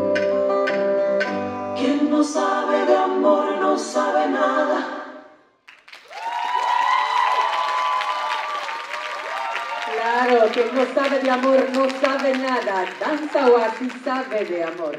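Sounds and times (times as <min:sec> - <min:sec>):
woman singing lead: 0:01.8 - 0:05.2
backing voices singing: 0:01.8 - 0:05.4
audience applause and cheers: 0:05.7 - 0:14.9.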